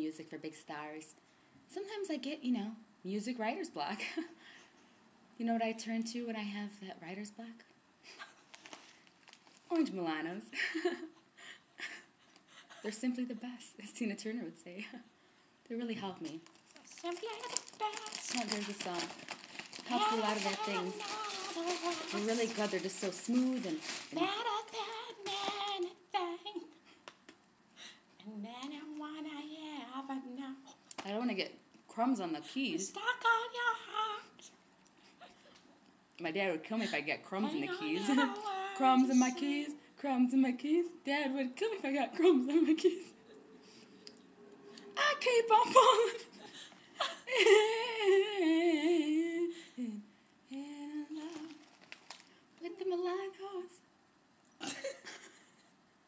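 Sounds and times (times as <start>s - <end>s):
woman humming: 19.9s - 22.5s, 37.5s - 39.7s.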